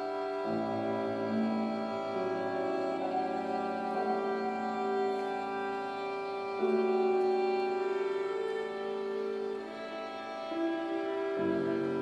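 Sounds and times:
piano: 0:00.0 - 0:12.0
violin: 0:00.0 - 0:12.0.

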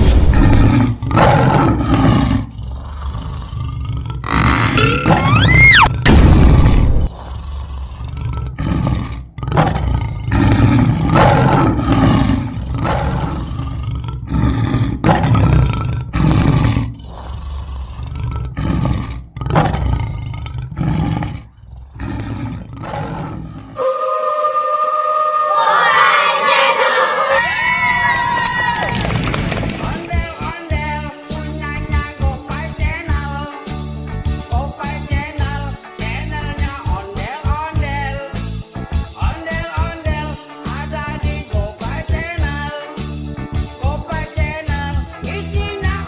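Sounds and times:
lion-like roaring and growling: 0:00.2 - 0:23.8
whistle-like rising glide: 0:04.8 - 0:06.0, 0:23.8 - 0:26.6.

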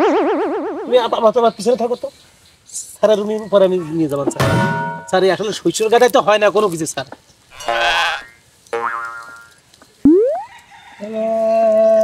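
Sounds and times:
rising cartoon boing: 0:00.0 - 0:00.9, 0:07.6 - 0:09.5, 0:10.1 - 0:10.5
short cartoon tones: 0:10.1 - 0:10.5.

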